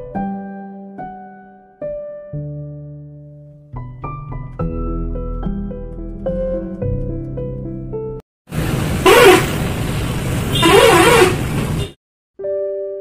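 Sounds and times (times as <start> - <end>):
soft electric piano music: 0.0 - 8.2, 12.4 - 13.0
street noise: 8.5 - 12.0
vehicle horn honks: 9.0 - 9.5, 10.5 - 12.0.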